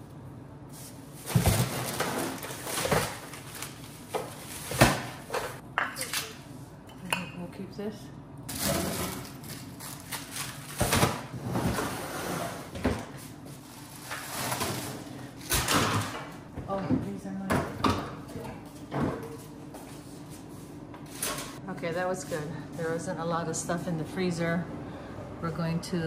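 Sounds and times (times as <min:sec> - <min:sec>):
plastic bags rustling: 0:01.1 - 0:05.6, 0:08.5 - 0:11.1.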